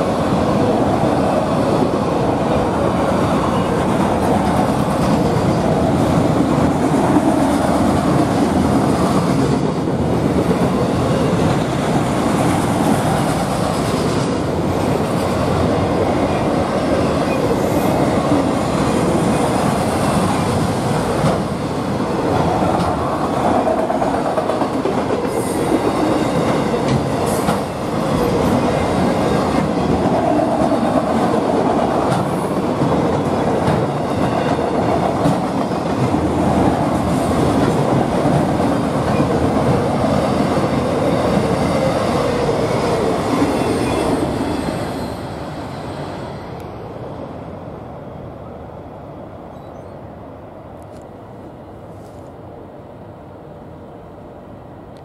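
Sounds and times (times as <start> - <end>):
freight train wheels clacking on rails: 2.5 - 45.4.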